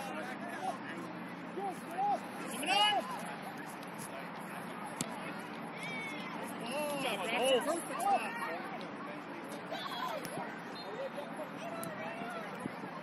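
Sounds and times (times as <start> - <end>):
children shouting and calling: 5.7 - 7.0, 7.8 - 8.8, 9.6 - 13.0.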